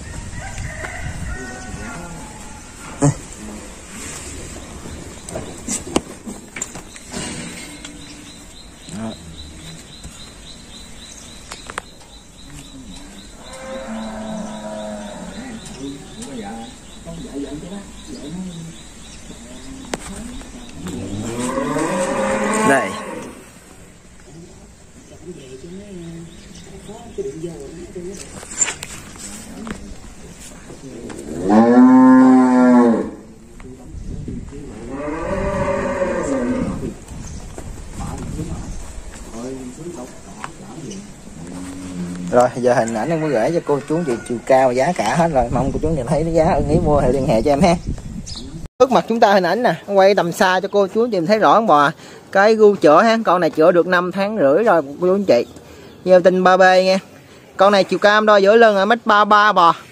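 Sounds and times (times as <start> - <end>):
cattle mooing: 13.4 - 15.7, 20.8 - 23.4, 31.2 - 33.3, 34.8 - 36.9.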